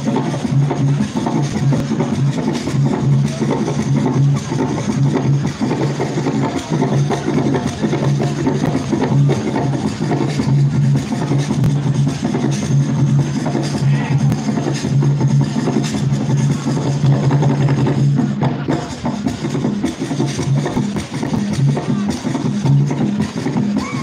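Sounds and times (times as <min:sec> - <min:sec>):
drum-led dance music: 0:00.0 - 0:24.0.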